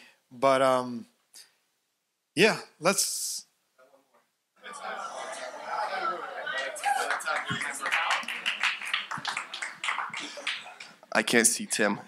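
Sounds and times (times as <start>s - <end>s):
scattered hand clapping: 6.5s - 11.1s.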